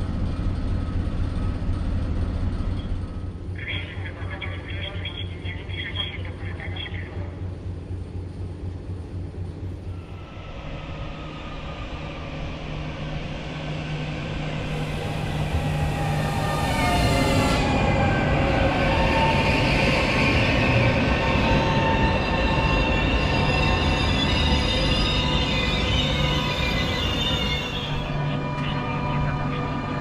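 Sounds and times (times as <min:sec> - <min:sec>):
train passing with low drone: 0:00.0 - 0:30.0
steel wheels and brakes squealing: 0:18.9 - 0:30.0.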